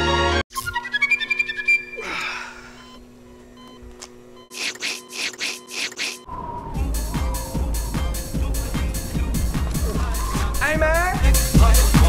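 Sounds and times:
low electronic hum: 0:00.6 - 0:12.0
faint short beeps: 0:02.8 - 0:06.3.

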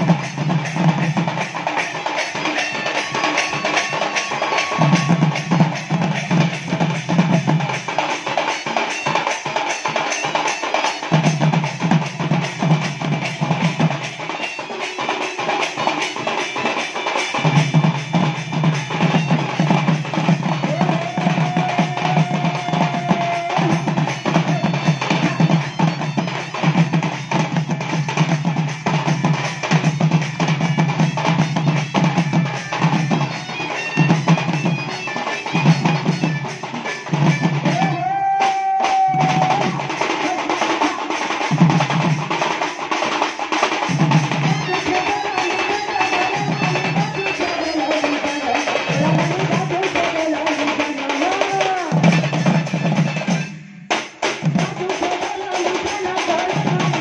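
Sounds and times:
barrel drums beating fast rhythm: 0:00.0 - 0:57.0
shawm melody: 0:00.0 - 0:57.0.

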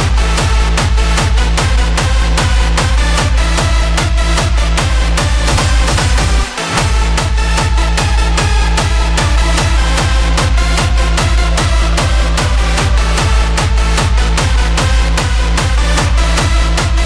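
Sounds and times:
falling bass tone: 0:00.0 - 0:17.0
heavy kick drum: 0:00.0 - 0:17.0.

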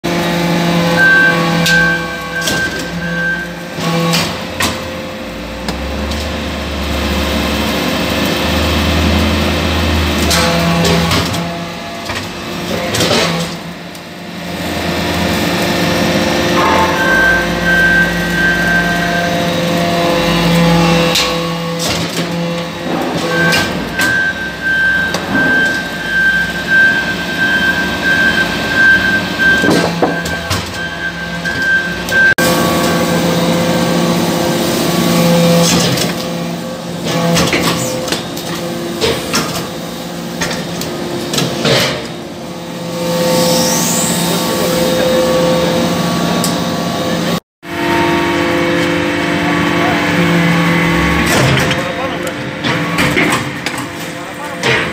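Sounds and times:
hydraulic pump hum and whine: 0:00.1 - 0:54.9
sharp metallic knocks: 0:16.5 - 0:19.4.

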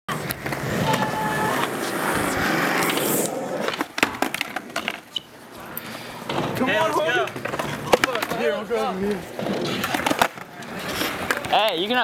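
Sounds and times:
skateboard wheels rolling on concrete: 0:00.1 - 0:12.0
skateboard clacks and knocks: 0:06.3 - 0:08.5, 0:09.5 - 0:11.8.

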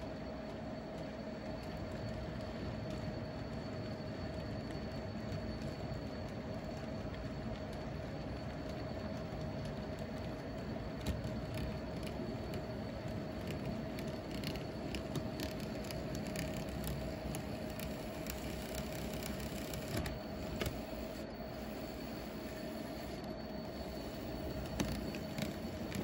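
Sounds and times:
model train rolling on track: 0:00.0 - 0:26.0.

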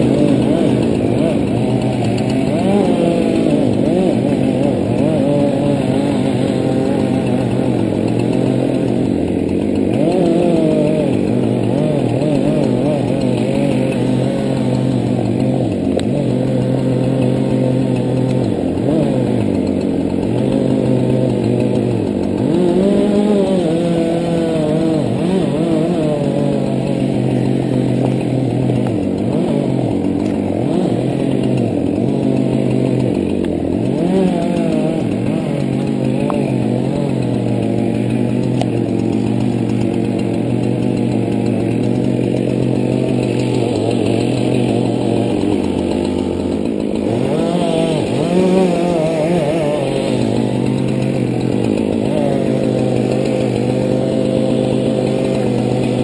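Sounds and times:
chainsaw cutting wood: 0:00.0 - 0:56.0.

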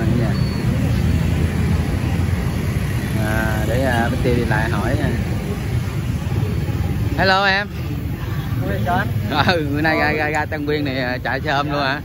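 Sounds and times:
motorbikes and cars passing: 0:00.0 - 0:12.0
road traffic rumble: 0:00.0 - 0:12.0.

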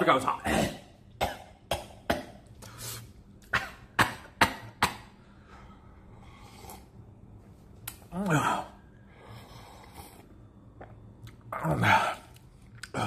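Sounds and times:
man coughing: 0:03.5 - 0:04.0.

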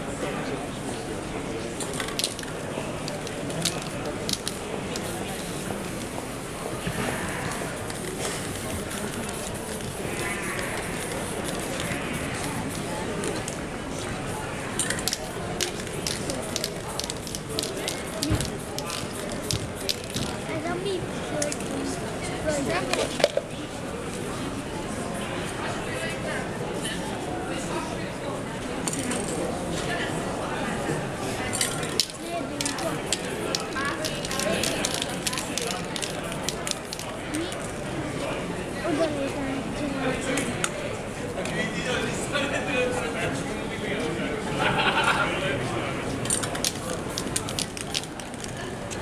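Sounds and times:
spray paint can hissing: 0:03.1 - 0:06.1, 0:07.7 - 0:12.8, 0:14.8 - 0:20.4, 0:31.8 - 0:37.2, 0:46.5 - 0:48.5.

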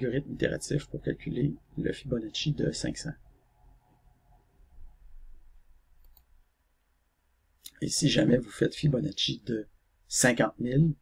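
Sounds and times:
computer mouse clicks: 0:06.0 - 0:06.4.

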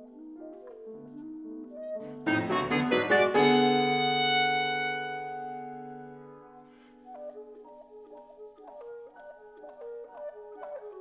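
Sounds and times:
grand piano playing: 0:02.0 - 0:07.0
clarinet playing: 0:02.2 - 0:06.8.

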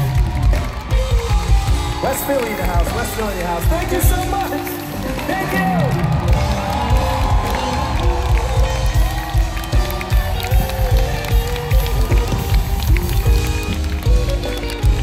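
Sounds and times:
audience noise: 0:00.0 - 0:15.0
sustained keyboard chords: 0:00.0 - 0:15.0.

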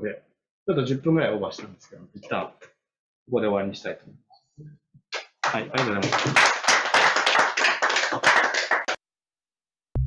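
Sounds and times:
audience applause: 0:05.4 - 0:09.0.

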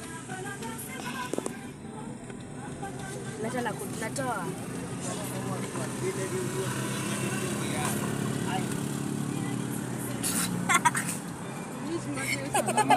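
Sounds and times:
car engine and road hum: 0:00.0 - 0:12.9.

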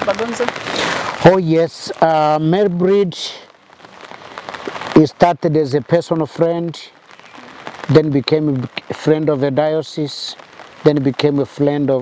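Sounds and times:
rain on umbrellas: 0:00.0 - 0:12.0.

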